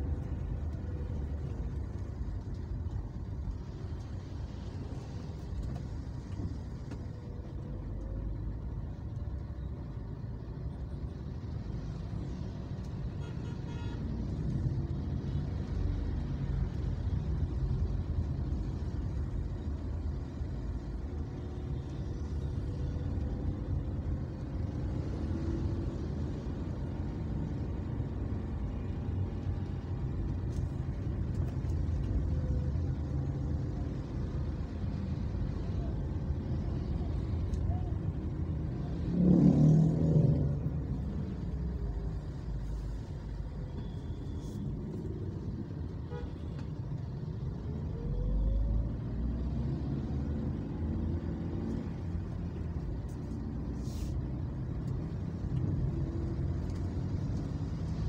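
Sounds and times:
car road and engine rumble: 0.0s - 58.0s.

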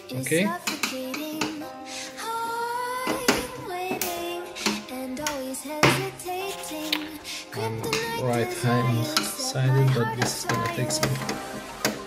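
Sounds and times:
person singing long sliding notes: 0.0s - 12.0s.

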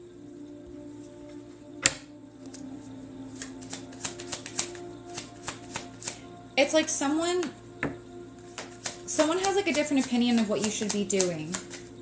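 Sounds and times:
soft background music: 0.0s - 12.0s
cards being shuffled: 3.3s - 6.2s, 8.4s - 12.0s.

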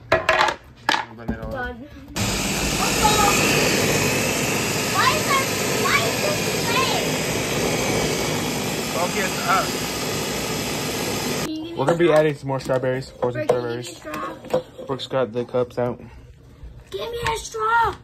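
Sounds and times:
electric blender whirring: 2.2s - 11.5s.

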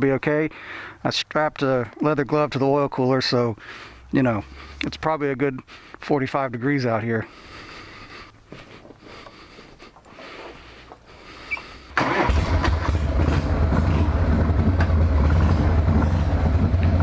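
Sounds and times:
motorcycle engine rumbling: 7.2s - 17.0s.

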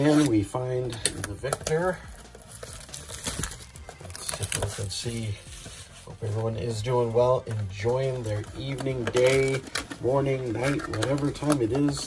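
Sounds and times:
plastic wrap tearing and crinkling: 0.0s - 12.0s.

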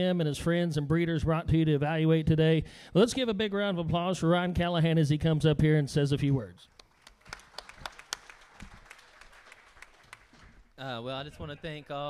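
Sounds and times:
audience applauding: 6.8s - 10.7s.

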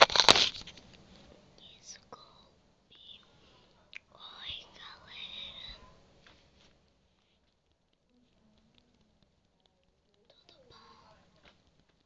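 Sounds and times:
person whispering: 1.6s - 5.9s, 10.2s - 11.3s.

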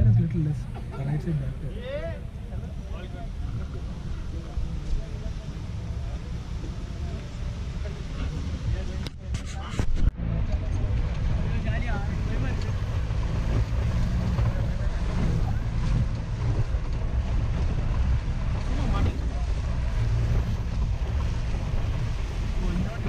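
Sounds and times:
car engine rumble: 0.0s - 23.0s
tyres on rocky dirt road: 0.0s - 23.0s
wind noise on microphone: 7.8s - 10.2s.

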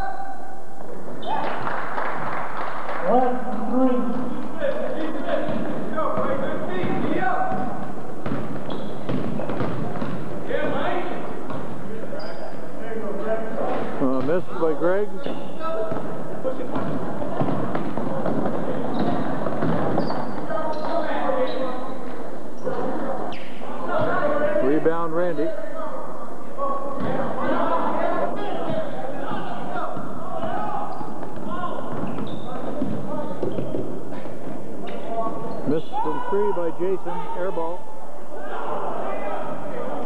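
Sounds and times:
indistinct crowd voices: 3.0s - 40.0s
basketball bouncing on hardwood: 5.4s - 10.3s, 15.8s - 20.5s.

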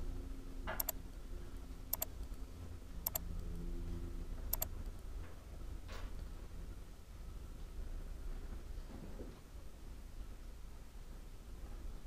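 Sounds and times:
low steady hum: 0.0s - 12.0s
computer mouse clicking: 0.8s - 1.0s, 1.9s - 2.1s, 3.0s - 3.2s, 4.5s - 4.7s.

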